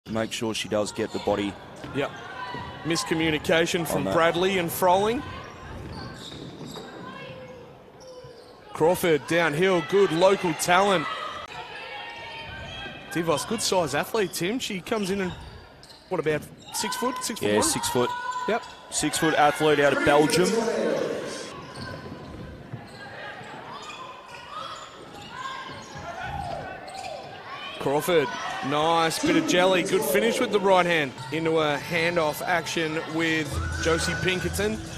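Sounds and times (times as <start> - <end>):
shoes squeaking on hardwood floor: 5.3 - 8.7, 14.2 - 27.6
hall background noise: 19.1 - 21.6, 28.6 - 33.3.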